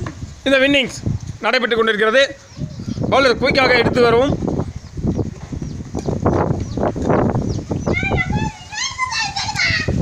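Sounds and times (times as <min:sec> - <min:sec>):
child calling out: 0:07.9 - 0:10.0.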